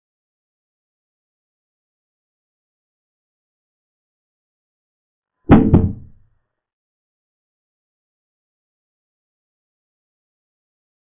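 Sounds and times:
quick knocks sound effect: 5.5s - 6.2s.

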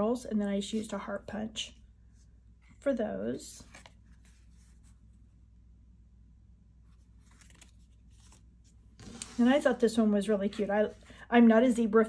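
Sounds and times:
low steady hum: 0.0s - 12.0s
paper cards rustling: 3.6s - 5.0s, 6.9s - 9.7s
cards scraping on desk: 9.0s - 9.7s.

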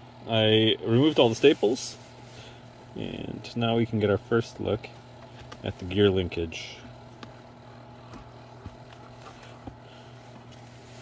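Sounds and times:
steady low hum: 0.0s - 11.0s
rubber boot handling noise: 6.9s - 11.0s.

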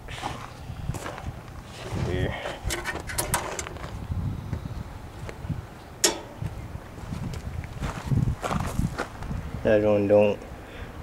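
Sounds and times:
wind buffeting microphone: 0.0s - 10.2s
sharp click: 6.0s - 6.4s.

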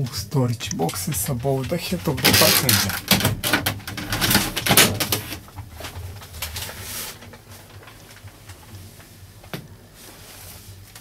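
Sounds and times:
person's voice: 0.0s - 3.2s.

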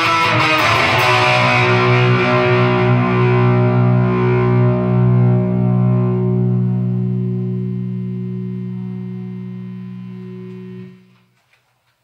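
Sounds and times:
electric guitar chord ringing: 0.0s - 11.3s.

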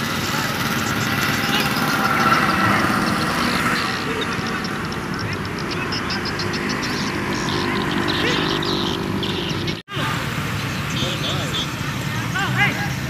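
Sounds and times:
fast high chirping: 0.0s - 9.8s
faint distant voices: 0.0s - 13.0s.

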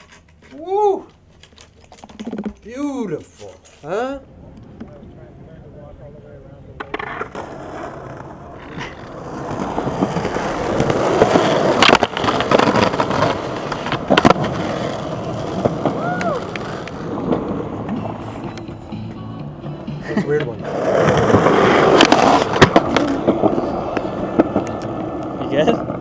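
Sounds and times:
skateboard wheels rolling on concrete: 0.0s - 26.0s
skateboard clacks: 6.8s - 19.2s, 20.4s - 26.0s.

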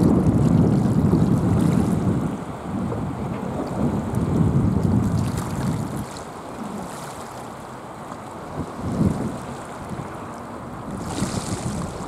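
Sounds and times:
wind buffeting microphone: 0.0s - 7.2s, 8.2s - 12.0s.

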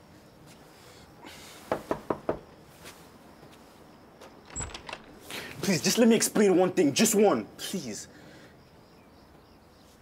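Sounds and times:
knuckles knocking on wooden door: 1.7s - 2.5s.

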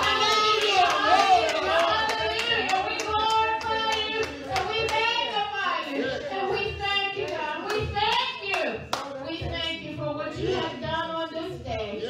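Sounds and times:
hands clapping: 0.0s - 5.2s, 7.2s - 9.8s.

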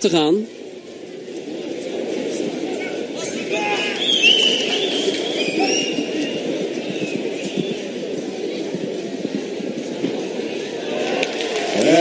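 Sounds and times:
crowd murmuring: 0.0s - 12.0s.

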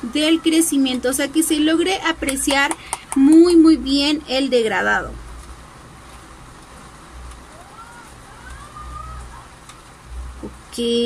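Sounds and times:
low uneven rumble and hiss: 0.0s - 11.0s.

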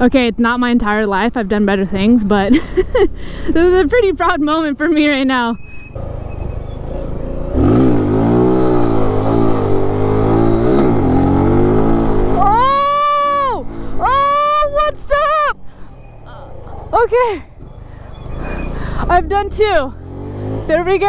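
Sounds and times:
motorcycle engine revving hard: 6.0s - 12.6s, 18.2s - 21.0s
rider whooping: 12.3s - 18.9s.

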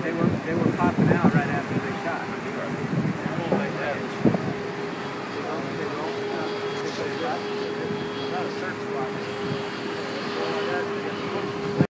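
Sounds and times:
faint voices: 0.0s - 11.9s
rushing sea: 0.0s - 11.9s
steady hum: 0.0s - 11.9s
wind: 0.0s - 11.9s.

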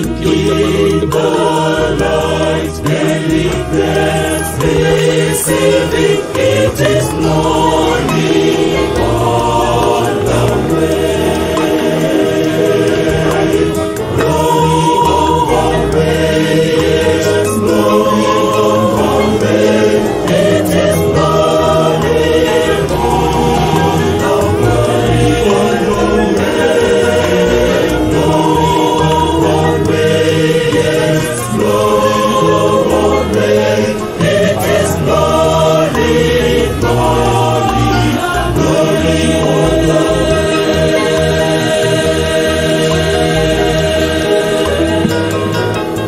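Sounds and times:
choir singing gospel: 0.0s - 46.0s.

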